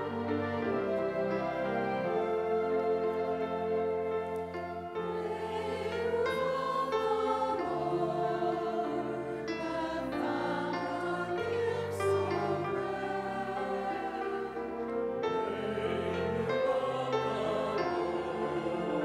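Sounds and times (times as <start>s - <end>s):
choir singing in parts: 0.0s - 19.0s
instrumental accompaniment: 0.0s - 19.0s.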